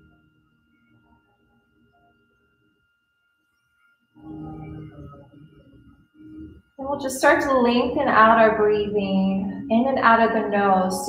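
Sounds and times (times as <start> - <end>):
faint high whine: 0.0 - 11.0.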